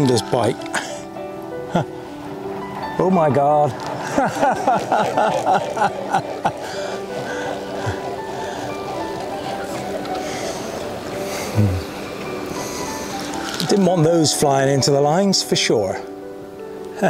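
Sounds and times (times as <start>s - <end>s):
swan wings beating: 2.1s - 14.1s.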